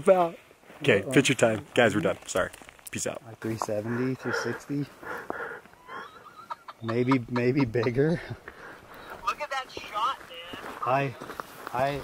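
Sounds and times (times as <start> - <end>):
man speaking: 0.0 - 5.2, 6.7 - 8.4, 10.8 - 12.0.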